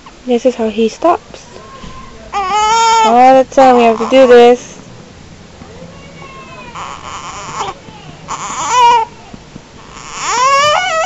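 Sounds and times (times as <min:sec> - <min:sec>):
baby crying: 0:01.5 - 0:04.6, 0:05.8 - 0:11.0
baby whimpering: 0:01.6 - 0:04.7, 0:06.0 - 0:11.0.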